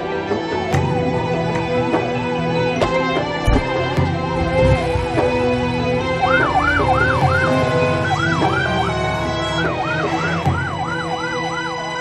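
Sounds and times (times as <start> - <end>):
steady music: 0.0 - 12.0
emergency sirens yelping: 4.2 - 12.0.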